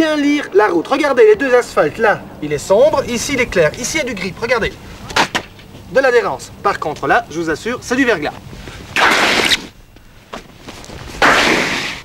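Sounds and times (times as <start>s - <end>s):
shoe scraping on ice: 8.3s - 12.0s.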